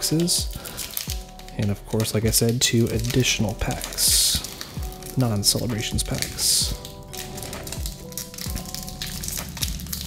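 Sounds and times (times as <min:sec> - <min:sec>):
background music: 0:00.0 - 0:10.0
foil wrapper crinkling: 0:00.0 - 0:10.0.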